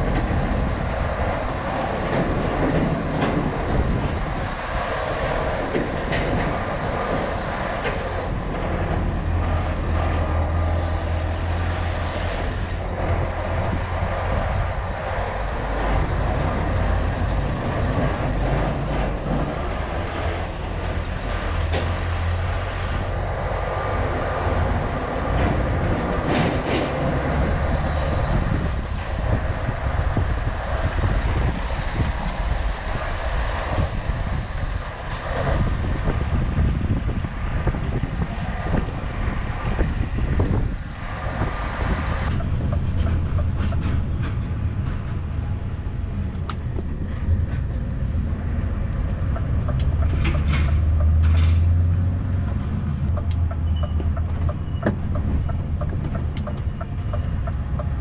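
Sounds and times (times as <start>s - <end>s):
road noise: 0.0s - 58.0s
truck engine rumble: 0.0s - 58.0s.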